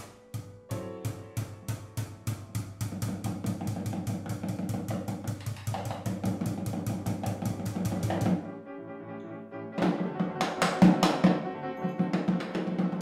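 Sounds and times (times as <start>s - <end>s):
piano playing low chords: 0.0s - 3.0s, 6.9s - 13.0s.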